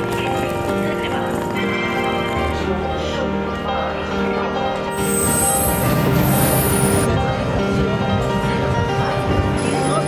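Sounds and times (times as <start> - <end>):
chiming bell-like music: 0.8 - 7.1.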